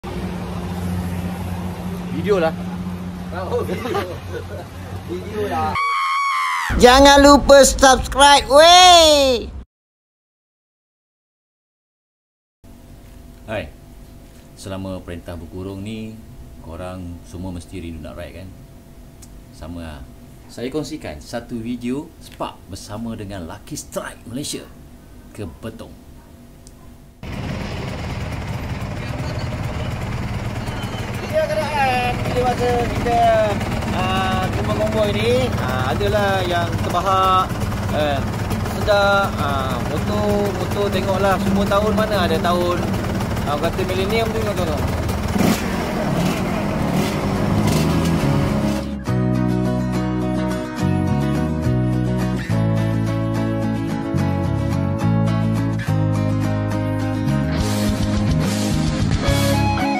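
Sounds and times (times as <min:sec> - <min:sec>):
vehicle engine idling: 0:00.0 - 0:05.4, 0:27.2 - 0:49.0.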